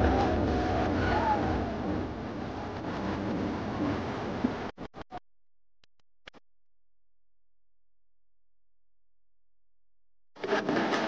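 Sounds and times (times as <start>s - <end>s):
dj music: 0.0s - 4.5s.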